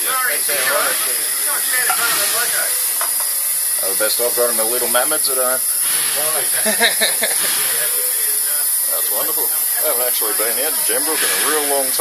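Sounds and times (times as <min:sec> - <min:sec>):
high hiss of steam: 0:00.0 - 0:12.0
faint voices: 0:03.8 - 0:12.0.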